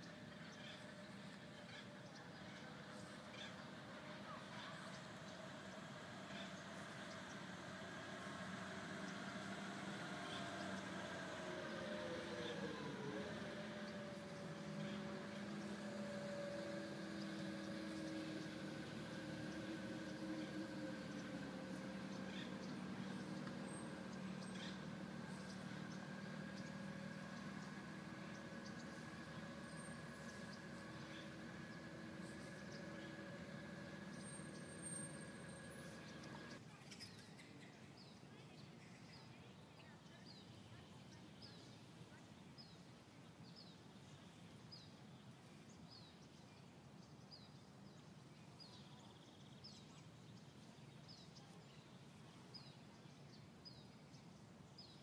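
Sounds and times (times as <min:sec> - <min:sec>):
faint engine hum: 0:00.0 - 0:55.0.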